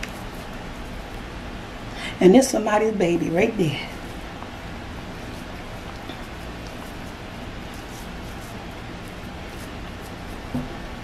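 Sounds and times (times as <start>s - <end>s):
low kitchen hiss: 0.0s - 11.0s.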